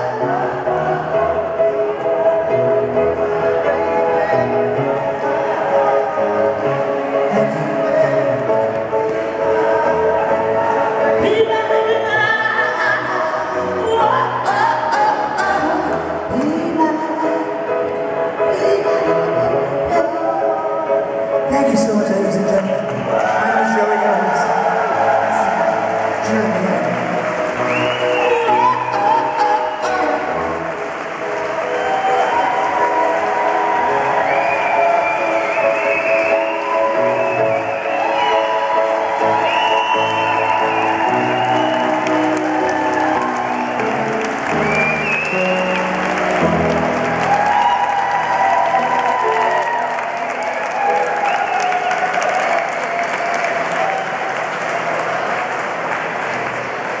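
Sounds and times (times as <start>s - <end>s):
grand piano chords: 0.0s - 57.0s
audience applause: 1.8s - 12.2s, 22.8s - 57.0s.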